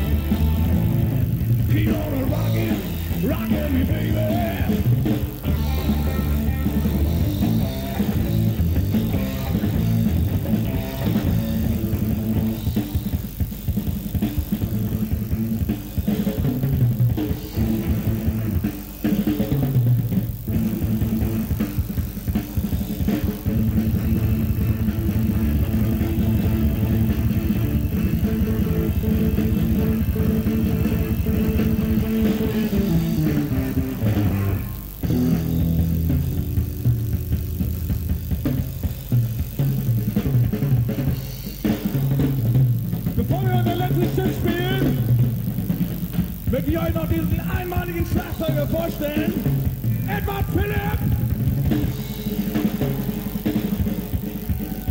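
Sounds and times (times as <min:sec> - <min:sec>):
electric guitar sustained notes: 0:00.0 - 0:13.3, 0:14.0 - 0:54.9
bass guitar: 0:00.0 - 0:54.9
drums groove: 0:00.0 - 0:54.9.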